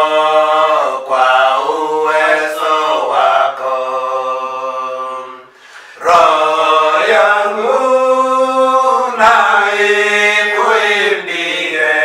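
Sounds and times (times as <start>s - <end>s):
men singing a hymn unaccompanied: 0.0s - 12.0s.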